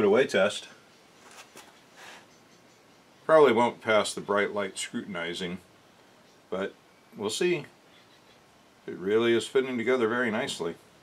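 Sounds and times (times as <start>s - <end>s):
faint rustles of hands: 1.1s - 2.4s.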